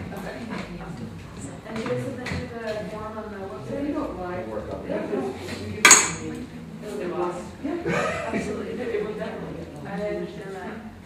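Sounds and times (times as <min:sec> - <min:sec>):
tableware clinking: 0:05.8 - 0:06.3.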